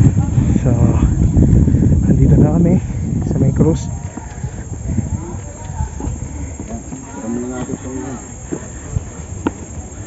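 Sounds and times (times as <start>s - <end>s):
people's voices: 0.0s - 10.0s
wind buffeting microphone: 0.0s - 10.0s.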